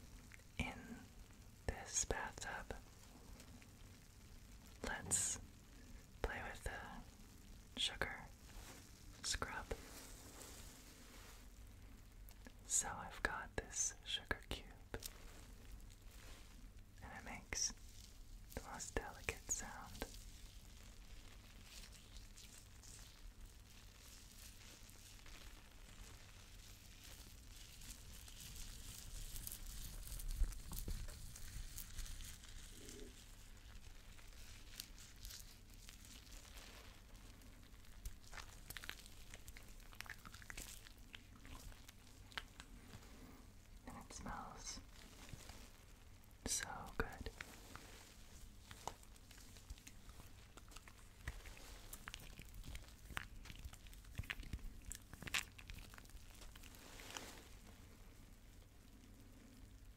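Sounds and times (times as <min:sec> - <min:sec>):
soft whispering: 0:00.0 - 0:59.9.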